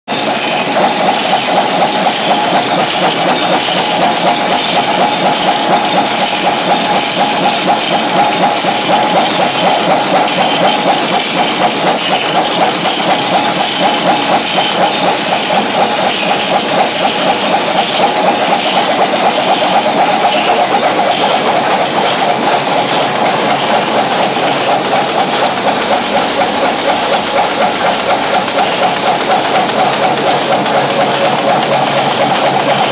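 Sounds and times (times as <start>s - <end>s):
machine metallic clatter: 0.1s - 32.9s.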